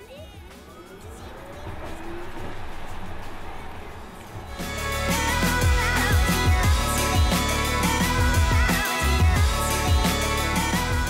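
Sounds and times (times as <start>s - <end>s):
road noise: 0.4s - 8.4s
loud music with heavy bass: 4.4s - 11.0s.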